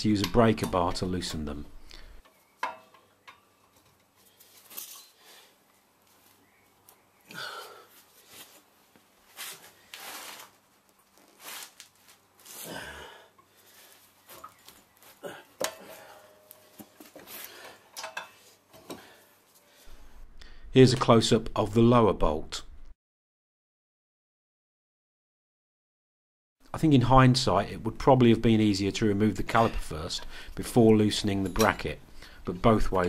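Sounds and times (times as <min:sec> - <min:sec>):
breaker bar clinks and scrapes: 0:02.6 - 0:05.5
rustling: 0:03.5 - 0:07.2, 0:07.9 - 0:12.9, 0:13.6 - 0:20.8.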